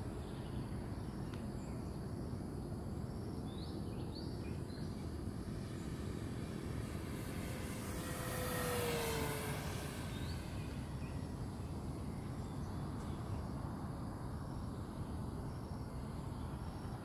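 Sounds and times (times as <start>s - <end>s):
model plane motor whine passing: 4.6s - 13.0s.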